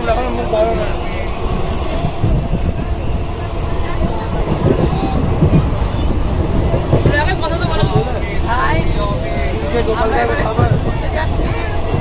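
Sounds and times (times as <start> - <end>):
people talking: 0.0 - 12.0
train carriage rumble: 0.0 - 12.0.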